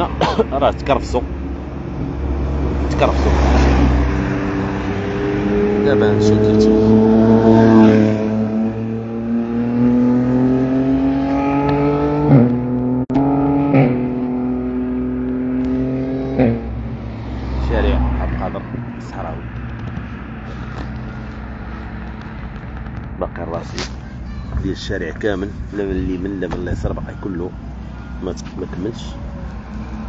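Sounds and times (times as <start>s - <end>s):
motorbike engine passing: 2.1s - 21.8s.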